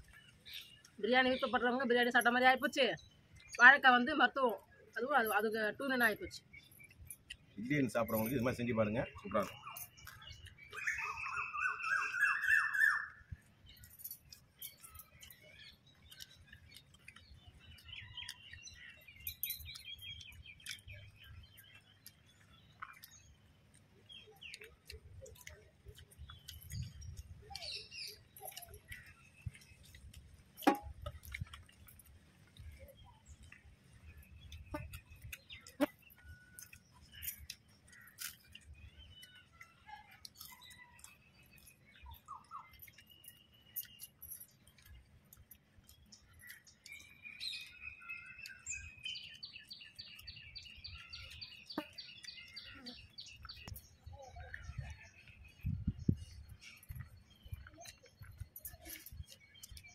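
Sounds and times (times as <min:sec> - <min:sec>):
small birds chirping: 0:00.0 - 0:59.9
fast trilling bird call: 0:10.8 - 0:13.2.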